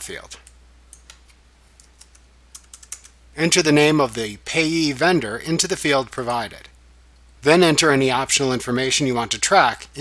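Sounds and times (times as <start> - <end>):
low steady hum: 0.0 - 10.0
computer keyboard keystrokes: 1.8 - 3.2.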